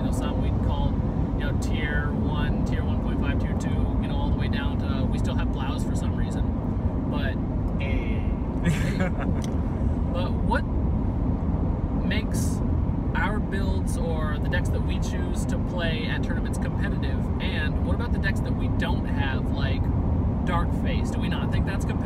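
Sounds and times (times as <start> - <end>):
people talking: 0.0 - 6.4, 7.1 - 9.4, 10.1 - 10.6, 12.0 - 12.6, 13.2 - 19.8, 20.5 - 22.0
car driving rumble inside cabin: 0.0 - 22.0.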